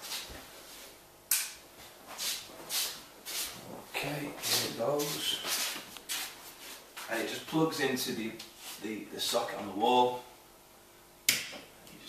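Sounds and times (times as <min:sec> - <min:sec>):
soft rustling hisses: 0:01.8 - 0:07.4, 0:08.4 - 0:09.0.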